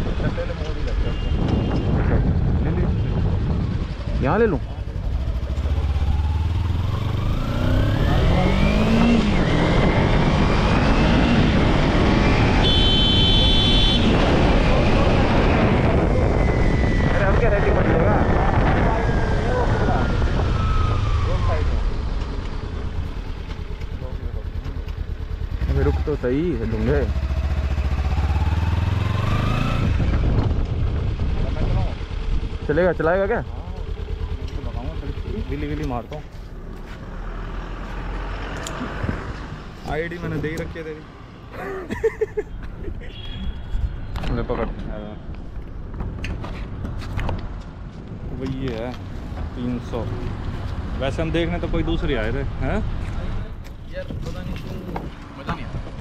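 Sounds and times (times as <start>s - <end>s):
motorcycle engine revving: 3.2s - 16.5s, 17.5s - 41.2s
high horn-like tone: 12.6s - 14.2s, 43.1s - 44.1s.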